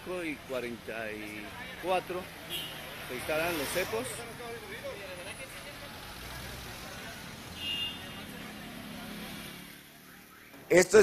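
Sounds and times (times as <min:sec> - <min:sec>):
passing vehicles: 0:00.0 - 0:11.0.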